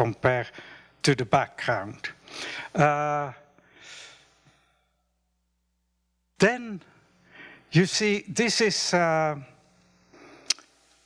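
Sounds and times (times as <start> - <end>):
person breathing softly: 0.5 - 1.0, 2.2 - 2.8, 3.6 - 5.0, 6.9 - 7.7, 10.0 - 10.6.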